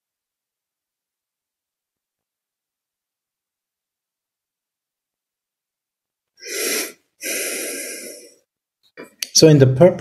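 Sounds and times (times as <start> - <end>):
person breathing close to microphone: 6.4 - 8.5.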